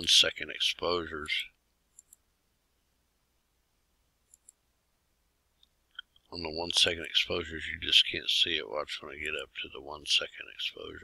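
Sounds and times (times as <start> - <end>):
computer mouse clicks: 1.9 - 2.2, 4.3 - 4.6.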